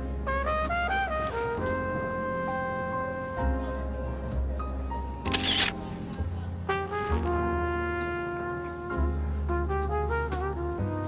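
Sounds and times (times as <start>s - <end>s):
music with sustained brass notes: 0.0s - 11.0s
camera shutter: 5.3s - 5.8s.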